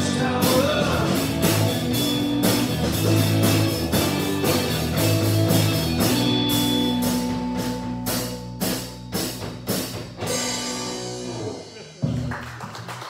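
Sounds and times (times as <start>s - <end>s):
drum and cymbal hits: 0.0s - 12.3s
rock band holding a chord: 0.0s - 12.4s.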